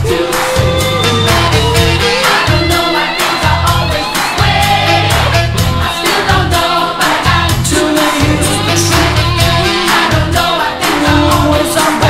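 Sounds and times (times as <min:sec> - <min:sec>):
pop-rock song: 0:00.0 - 0:12.0.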